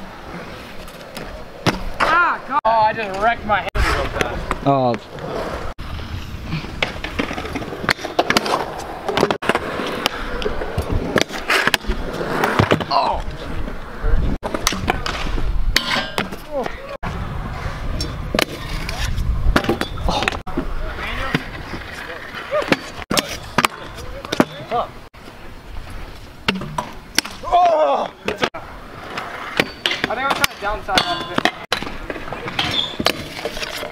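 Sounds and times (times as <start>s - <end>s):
scooter wheels rolling on concrete: 0.0s - 33.9s
scooters clacking on metal rail: 29.6s - 33.9s.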